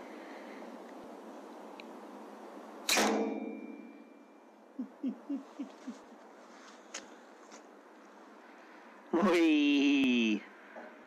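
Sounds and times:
air rifle shot: 2.8s - 3.8s.

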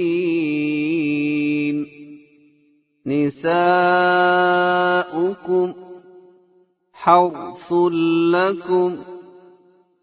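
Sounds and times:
man reciting in sung style: 0.0s - 10.0s.

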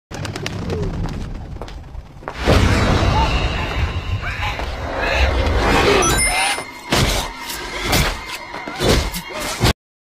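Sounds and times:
low rumble: 0.2s - 5.8s.

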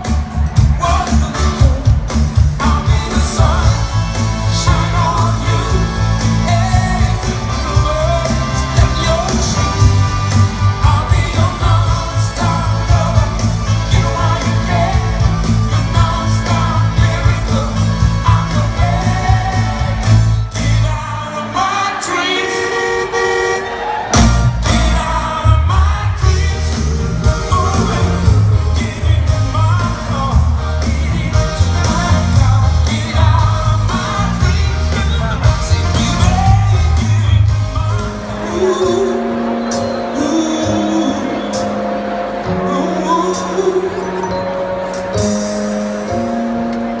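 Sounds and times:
live soul band playing: 0.0s - 47.0s
people singing: 2.6s - 10.0s, 10.7s - 22.8s, 23.7s - 39.4s.

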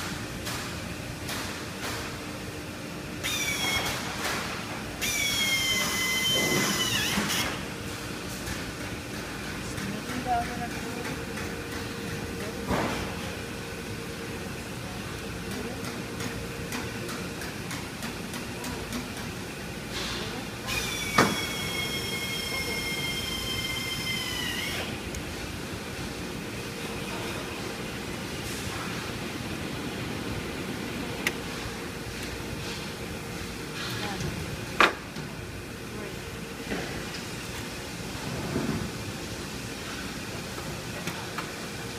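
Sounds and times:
machinery humming: 0.0s - 41.9s
high machine squeal: 5.0s - 7.6s, 20.7s - 24.9s.

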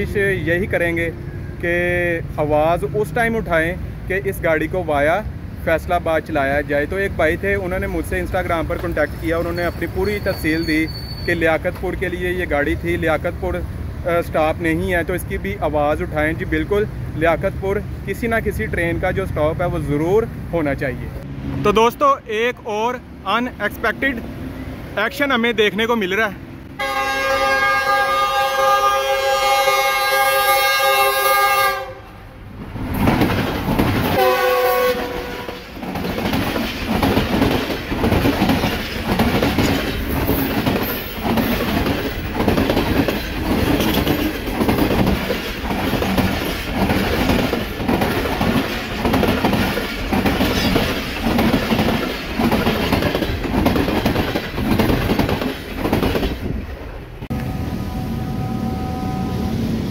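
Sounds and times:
train coaches rushing past: 0.0s - 59.9s
clickety-clack of train wheels: 7.7s - 12.4s, 32.9s - 56.7s
train horn blasts: 26.8s - 32.3s, 34.1s - 35.7s, 57.3s - 59.9s.

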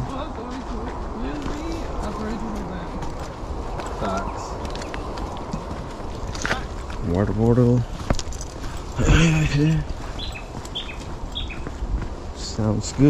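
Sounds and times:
footsteps on dirt trail: 0.0s - 13.0s.

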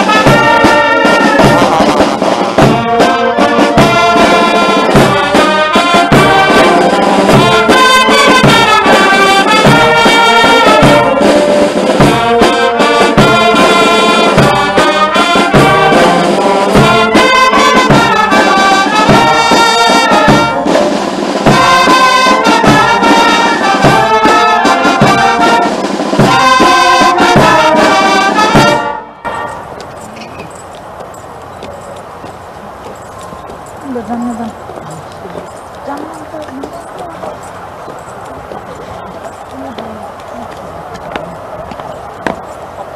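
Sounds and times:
brass band playing: 0.0s - 30.6s
faint background noise: 0.0s - 42.9s.

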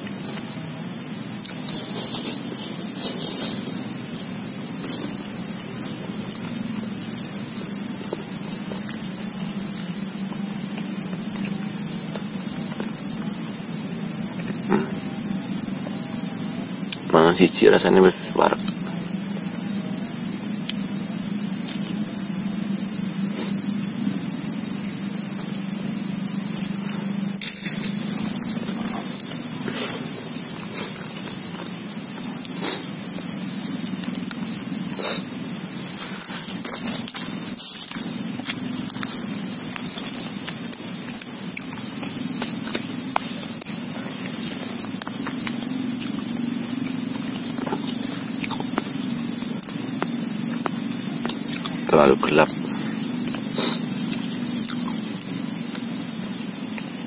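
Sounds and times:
crickets chirping: 0.0s - 57.0s.

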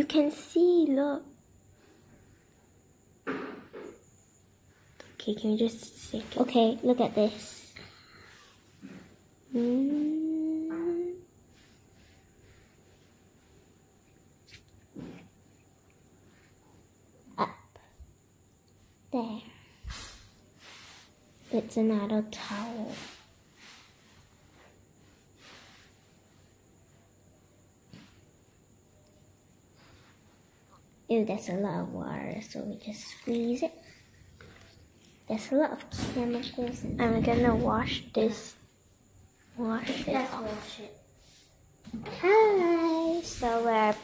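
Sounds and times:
person humming: 9.5s - 11.2s
faint soft rustle: 19.9s - 27.1s, 42.2s - 44.0s.

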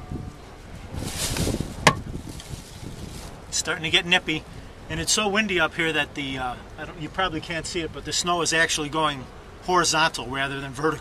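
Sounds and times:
wind buffeting microphone: 0.0s - 6.3s.

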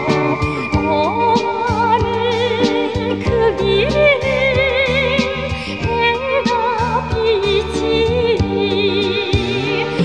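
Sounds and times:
instrumental accompaniment with beat: 0.0s - 10.0s
woman singing with vibrato: 0.0s - 10.0s.

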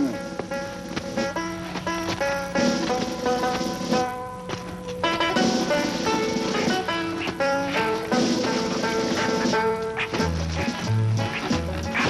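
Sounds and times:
film music melody: 0.0s - 12.0s.

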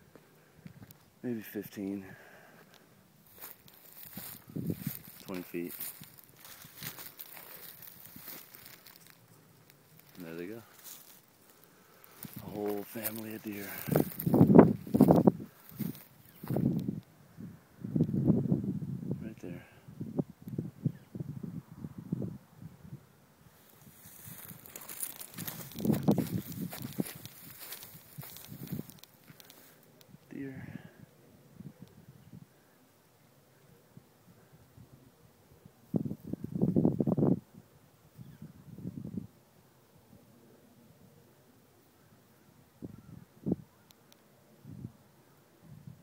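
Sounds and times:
stems rustling and crackling: 2.2s - 17.1s, 23.5s - 30.4s
footsteps crunching through dry grass: 3.2s - 17.0s, 23.6s - 29.9s.

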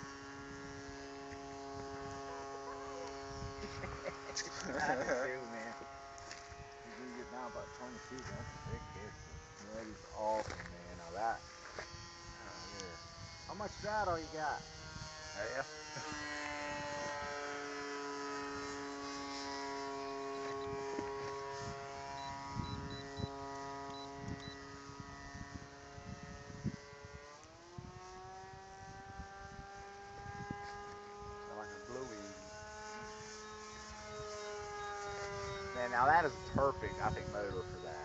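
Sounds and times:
model airplane motor buzzing: 0.0s - 38.0s.

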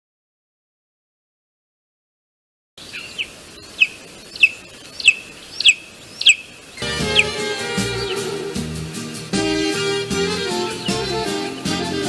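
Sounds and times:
bird chirping: 2.8s - 12.0s
music: 6.8s - 12.0s.

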